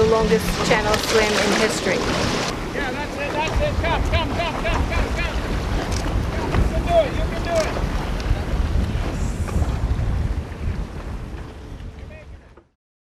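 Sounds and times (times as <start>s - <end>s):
sea noise: 0.0s - 12.7s
wind buffeting microphone: 0.0s - 12.7s
low rumble: 1.9s - 12.6s.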